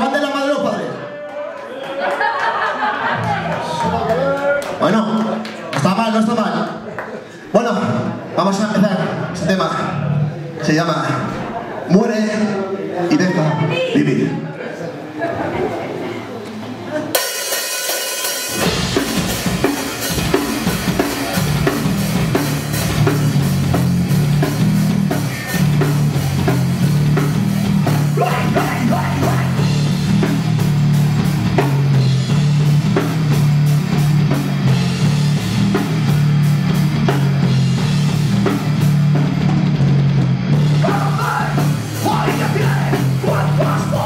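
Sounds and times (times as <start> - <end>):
drum kit fast drumming: 17.2 - 44.0
heavy bass riff: 18.3 - 44.0
distorted guitar: 18.5 - 44.0.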